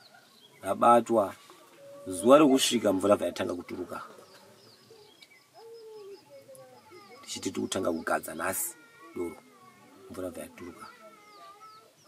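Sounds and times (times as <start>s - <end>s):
small birds chirping: 0.0s - 12.0s
dove cooing: 1.4s - 12.0s.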